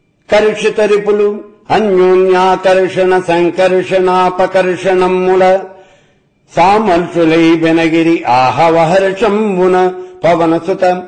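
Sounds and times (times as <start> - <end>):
man chanting: 0.2 - 11.0.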